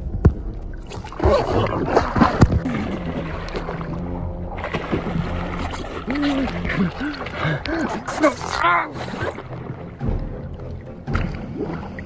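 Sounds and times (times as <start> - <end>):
water splashing and churning: 0.0 - 12.0.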